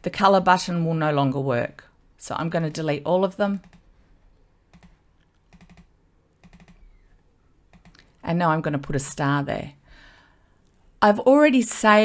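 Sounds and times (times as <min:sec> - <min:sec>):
computer mouse and key clicks: 0:03.6 - 0:03.9, 0:04.7 - 0:08.2.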